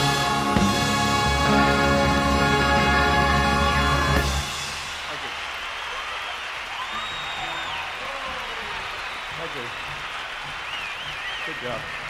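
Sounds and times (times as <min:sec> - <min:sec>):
crowd cheering: 0:00.0 - 0:12.0
audience clapping: 0:01.3 - 0:12.0.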